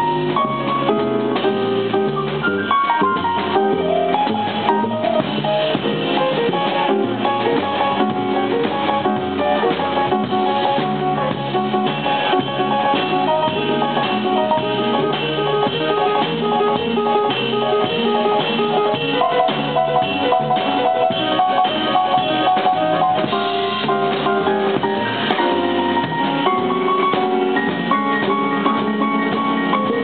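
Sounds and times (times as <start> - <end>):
drum kit: 0.0 - 30.0
piano: 0.0 - 30.0
plucked double bass: 0.0 - 30.0.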